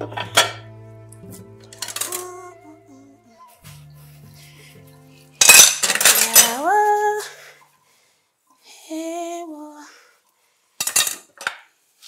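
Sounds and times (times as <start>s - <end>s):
crockery crashing: 1.7s - 2.3s, 5.4s - 6.7s.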